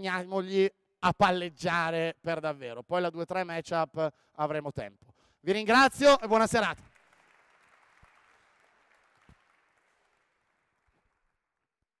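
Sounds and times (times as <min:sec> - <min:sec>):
faint applause: 0:06.8 - 0:11.3.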